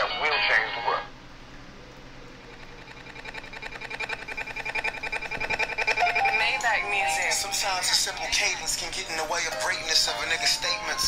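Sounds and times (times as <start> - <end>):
pulsing held chord: 2.2 - 11.0.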